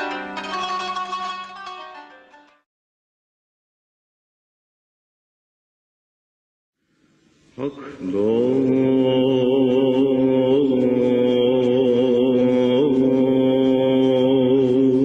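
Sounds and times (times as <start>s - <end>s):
man chanting a long note: 7.6s - 15.0s.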